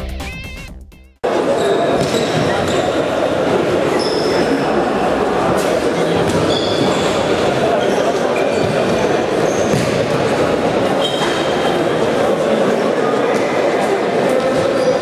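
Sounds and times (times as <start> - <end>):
players and spectators voices: 1.2 - 15.0
shoes squeaking on court: 1.5 - 3.2, 3.9 - 4.7, 6.2 - 10.1, 11.0 - 11.8, 14.4 - 15.0.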